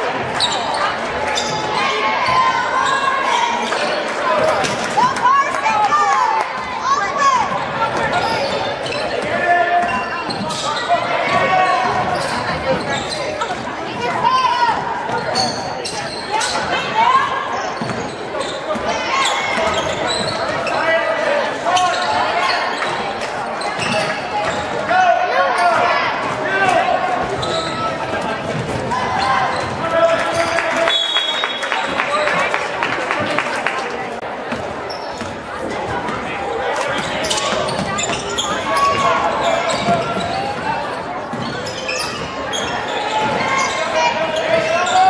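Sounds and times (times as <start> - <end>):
voices of players and spectators: 0.0 - 45.0.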